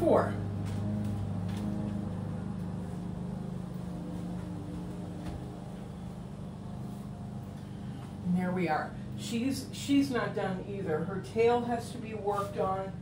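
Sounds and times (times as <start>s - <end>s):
lawn mower engine running: 0.4s - 8.2s.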